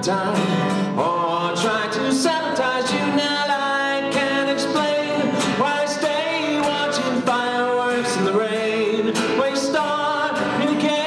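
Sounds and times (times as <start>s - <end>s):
acoustic guitar strumming: 0.0s - 11.0s
man singing a slow song: 0.0s - 11.0s.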